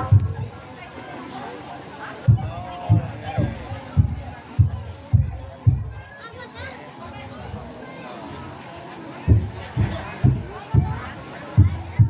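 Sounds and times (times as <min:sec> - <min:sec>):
children chattering and calling: 0:00.0 - 0:12.0
murmur of seated crowd: 0:00.0 - 0:12.0.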